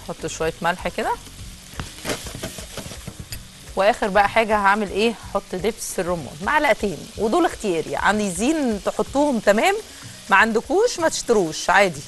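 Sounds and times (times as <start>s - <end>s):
livers sizzling in a pan: 0.0s - 12.0s.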